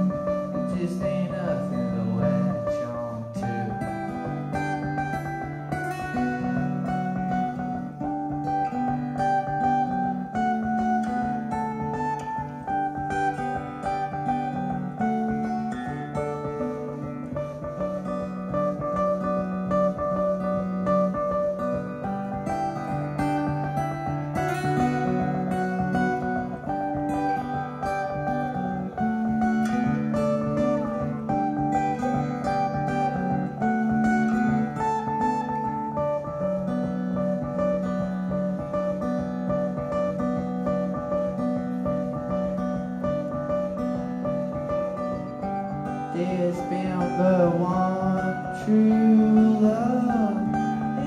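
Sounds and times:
electric guitar: 0.0s - 51.0s
strummed acoustic guitar: 0.0s - 51.0s.

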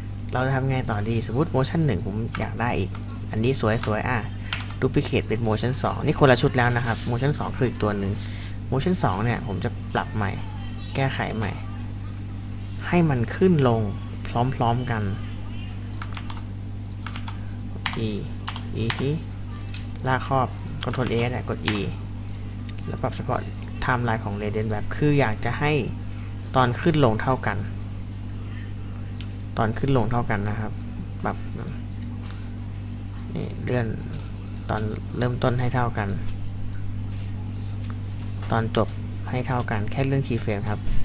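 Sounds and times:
low hum: 0.0s - 41.0s
computer keyboard clicks: 4.5s - 4.8s, 16.0s - 16.4s, 17.0s - 19.1s.

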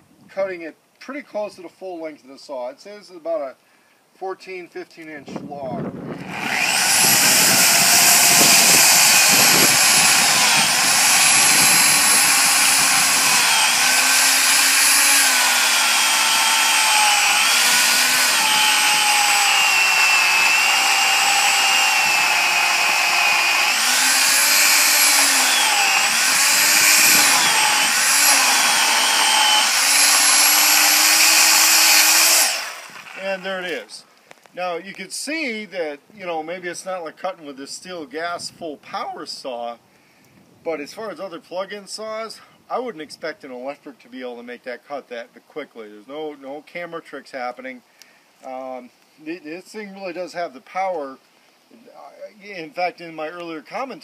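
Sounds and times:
electric chainsaw cutting log: 6.1s - 33.8s.

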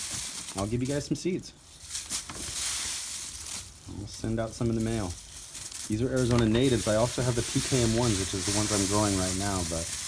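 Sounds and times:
dry seeds rustling in paper bag: 0.0s - 10.0s.

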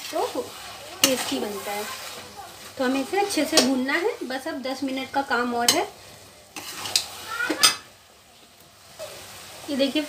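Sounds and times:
metal spoon scraping a pan: 0.0s - 7.9s.

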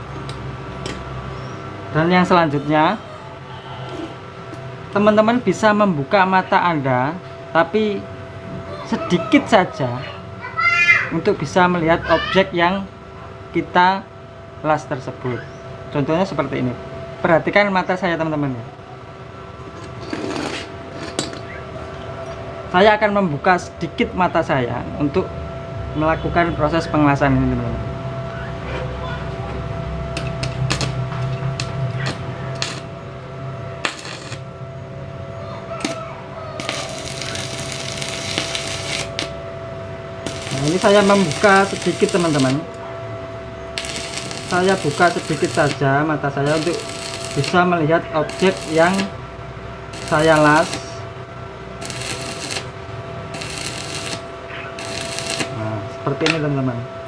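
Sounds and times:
low hum: 18.4s - 57.0s
arc welding crackling: 19.8s - 21.6s, 30.1s - 33.2s, 33.8s - 34.6s, 35.7s - 39.4s, 40.2s - 42.8s, 43.6s - 56.7s.

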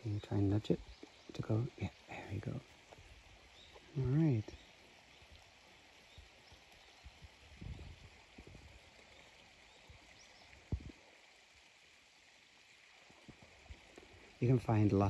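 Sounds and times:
faint outdoor hiss: 0.0s - 15.0s.

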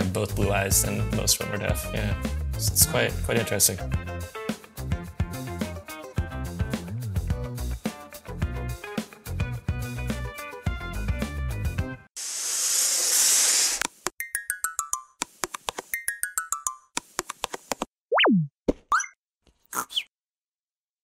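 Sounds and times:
music: 0.0s - 12.1s, 14.2s - 16.9s.

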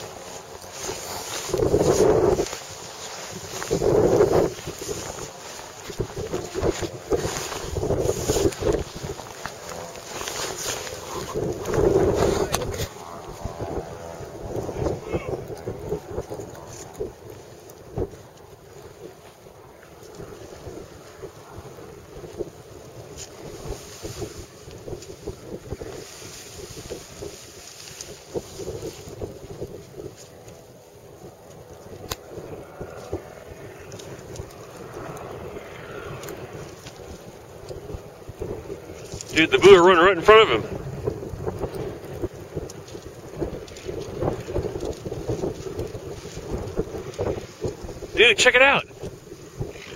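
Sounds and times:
wind buffeting microphone: 0.0s - 49.9s.

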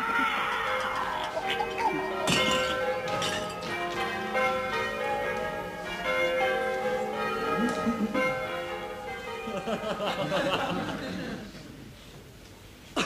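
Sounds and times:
church bells ringing: 0.0s - 11.4s.

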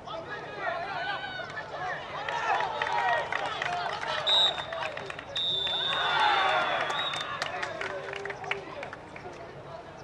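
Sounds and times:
players calling out: 0.0s - 8.7s
open-air ambience: 0.0s - 10.0s.

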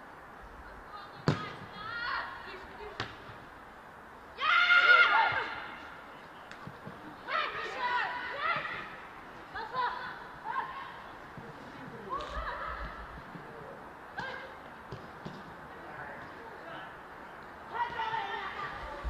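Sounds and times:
players shouting: 4.3s - 6.0s, 7.2s - 13.2s, 17.7s - 18.8s.

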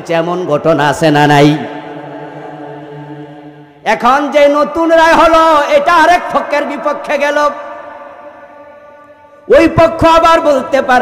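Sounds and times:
speech: 0.0s - 1.7s, 3.8s - 7.6s, 9.5s - 11.0s.

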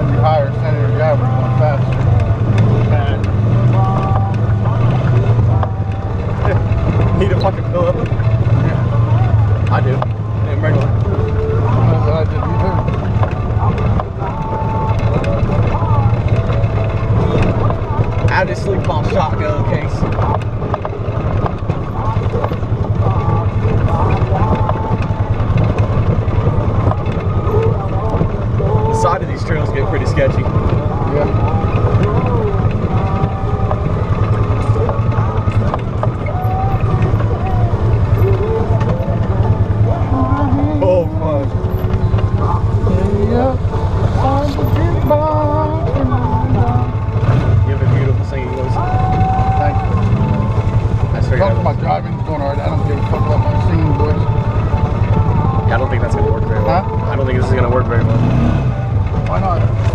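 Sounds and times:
indistinct voices: 0.0s - 59.9s
off-road vehicle engine droning: 0.0s - 59.9s.

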